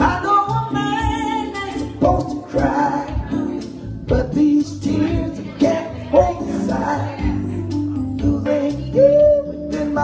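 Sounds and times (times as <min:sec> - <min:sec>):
man singing: 0:00.0 - 0:00.7, 0:01.9 - 0:10.0
electric keyboard accompaniment: 0:00.0 - 0:10.0.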